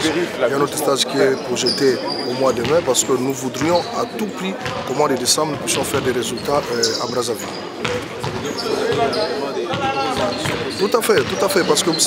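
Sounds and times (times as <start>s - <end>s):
players talking: 0.0s - 12.0s
balls bouncing on hall floor: 2.4s - 3.8s, 4.6s - 12.0s.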